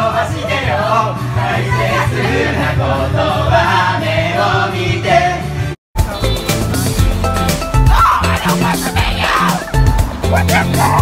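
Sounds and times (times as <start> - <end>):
people singing karaoke: 0.0 - 5.8.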